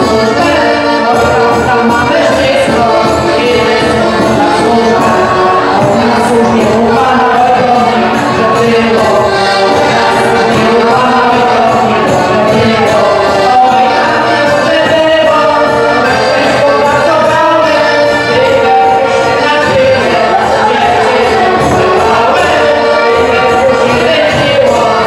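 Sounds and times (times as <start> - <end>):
accordion: 0.0 - 25.0
folk band dance music: 0.0 - 25.0
voices singing together: 0.0 - 25.0.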